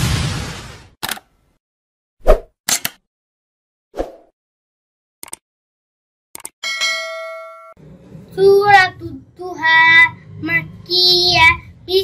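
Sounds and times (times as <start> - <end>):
short clicks: 5.2 - 5.4, 6.4 - 6.6.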